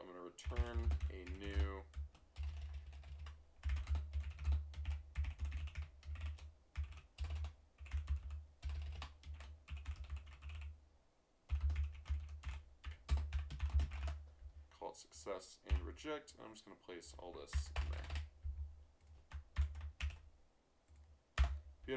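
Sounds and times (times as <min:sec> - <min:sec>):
computer keyboard typing: 0:00.4 - 0:10.7, 0:11.5 - 0:14.2, 0:15.7 - 0:15.9, 0:17.4 - 0:20.3, 0:20.9 - 0:21.9.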